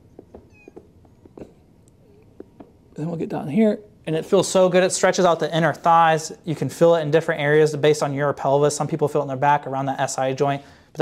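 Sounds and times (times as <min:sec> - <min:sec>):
faint taps and rustles: 0:00.0 - 0:02.9
sneaker squeak on polished floor: 0:00.3 - 0:01.5.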